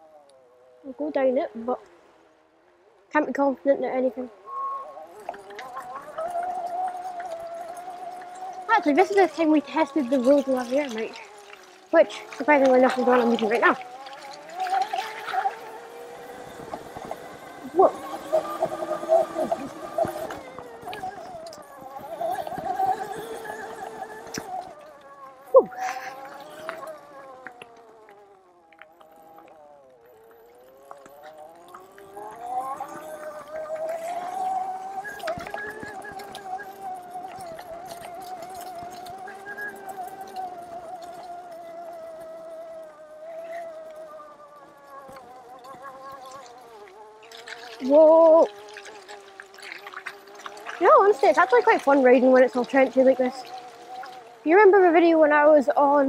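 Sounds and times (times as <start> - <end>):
electric motorbike motor whining: 0.0 - 56.0.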